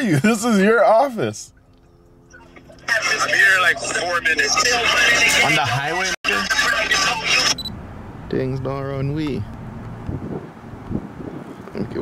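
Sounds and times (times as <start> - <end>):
people talking: 0.0 - 1.5, 2.8 - 7.7, 8.3 - 9.5, 11.8 - 12.0.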